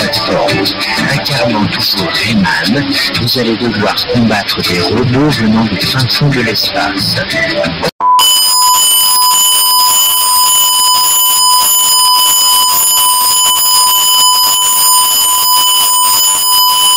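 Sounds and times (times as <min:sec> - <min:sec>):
loud distorted electronic beep: 0:08.0 - 0:16.9.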